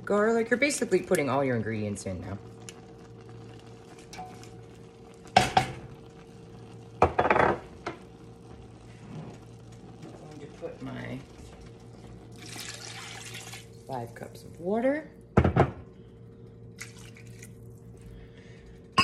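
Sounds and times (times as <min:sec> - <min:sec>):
water poured into pot: 0:10.8 - 0:14.3, 0:16.7 - 0:18.0.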